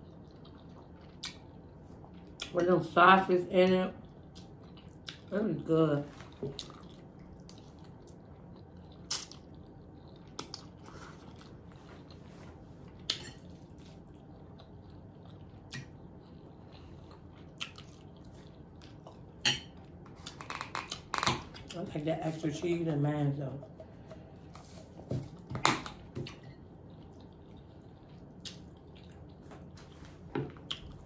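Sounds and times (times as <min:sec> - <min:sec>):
person chewing spaghetti: 0:00.0 - 0:02.5, 0:04.0 - 0:05.3, 0:06.1 - 0:21.8, 0:23.6 - 0:31.0
mouth clicks and smacks: 0:28.4 - 0:28.8.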